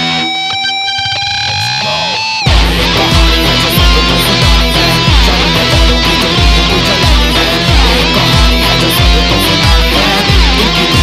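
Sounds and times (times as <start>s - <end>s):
distorted electric guitar note: 0.0s - 11.0s
drums: 2.5s - 11.0s.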